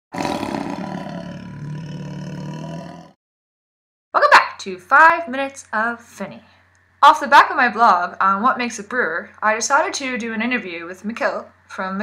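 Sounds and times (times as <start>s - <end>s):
rough roar-like sound effect: 0.1s - 3.2s.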